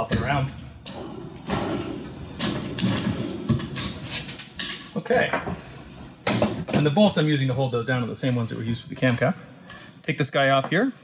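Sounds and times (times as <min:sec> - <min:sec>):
tools rustling and knocking: 0:00.0 - 0:07.2.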